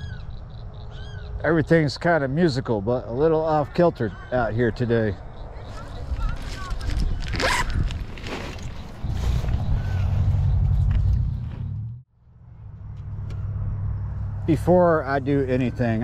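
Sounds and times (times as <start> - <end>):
bag rustling: 5.7 - 9.6
backpack zipper: 7.2 - 8.7
low rumble: 9.0 - 15.6.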